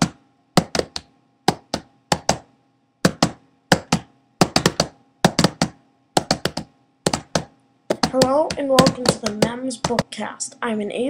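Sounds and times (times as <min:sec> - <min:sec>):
sharp taps: 0:00.0 - 0:10.1
faint steady hum: 0:00.0 - 0:11.0.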